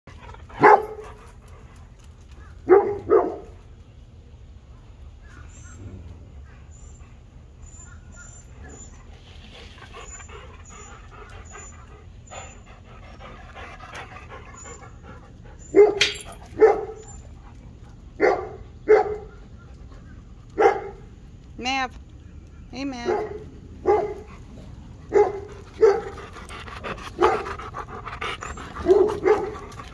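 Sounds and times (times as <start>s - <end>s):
dog barking: 0.6s - 1.0s, 2.7s - 3.5s, 15.8s - 17.0s, 18.2s - 19.3s, 20.6s - 21.0s, 23.0s - 24.3s, 25.1s - 26.1s, 28.8s - 29.6s.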